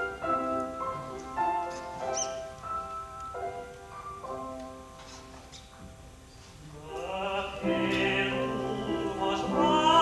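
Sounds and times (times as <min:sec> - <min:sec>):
piano playing slow chords: 0:00.0 - 0:10.0.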